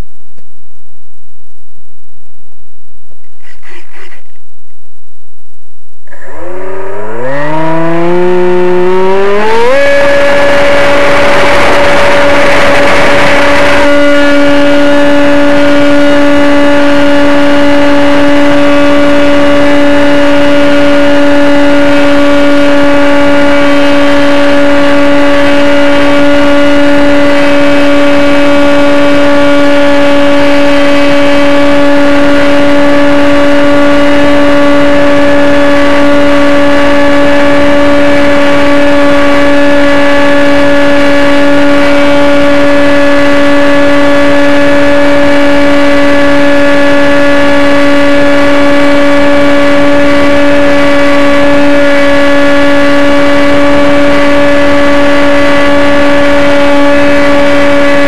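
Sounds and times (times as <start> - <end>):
rushing noise: 6.1 - 19.4
model airplane motor throttling up: 6.1 - 58.0.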